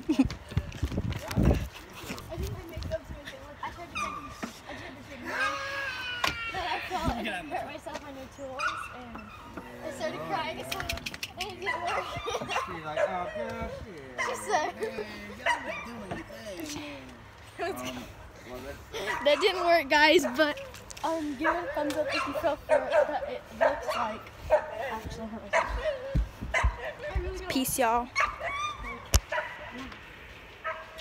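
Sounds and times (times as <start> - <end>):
high-pitched cries: 5.2 - 7.1.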